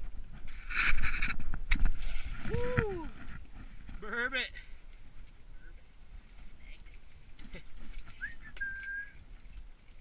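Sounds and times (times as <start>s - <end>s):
whistled note: 8.2s - 9.2s.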